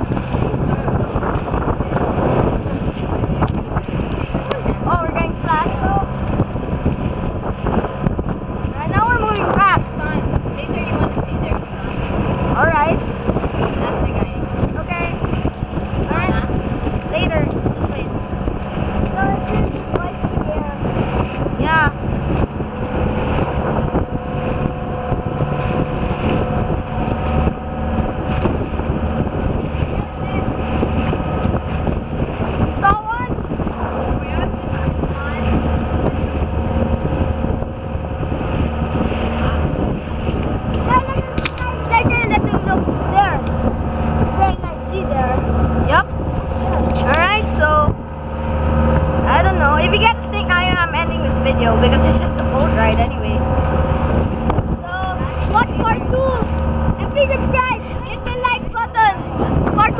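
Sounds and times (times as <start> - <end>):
boat engine running: 0.0 - 59.9
water noise: 0.0 - 59.9
wind: 0.0 - 59.9.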